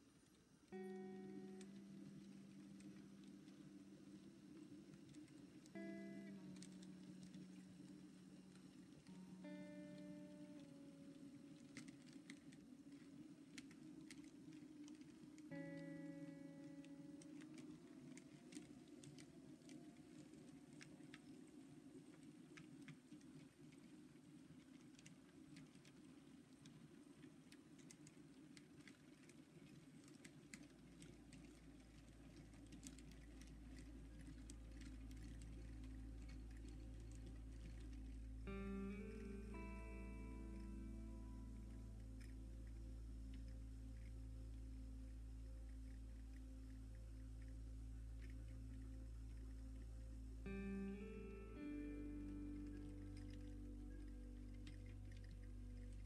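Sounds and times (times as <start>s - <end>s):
quiet background music: 0.0s - 56.0s.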